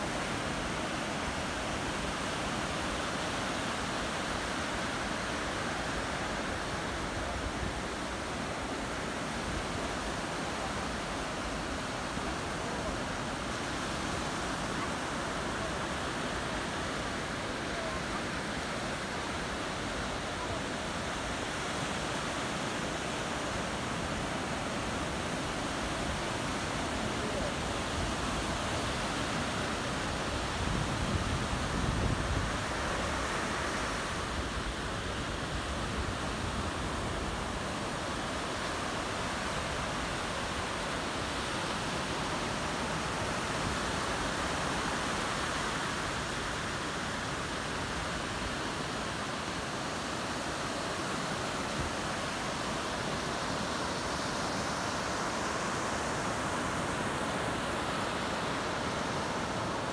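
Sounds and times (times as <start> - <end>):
small waves washing on beach: 0.0 - 59.9.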